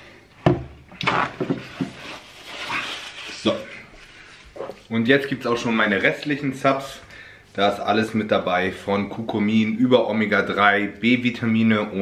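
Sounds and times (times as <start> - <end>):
paper towel rustling: 1.1 - 7.0.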